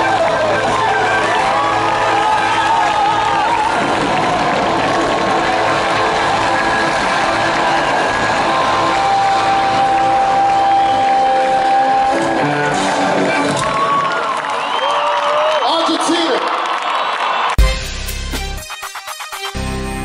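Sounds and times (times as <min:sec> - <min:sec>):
audience cheering and shouting: 0:00.0 - 0:17.6
live concert music through pa: 0:00.0 - 0:20.0.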